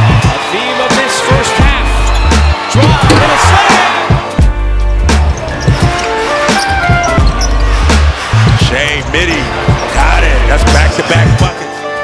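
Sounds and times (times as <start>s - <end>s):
background music with heavy bass: 1.2s - 12.0s.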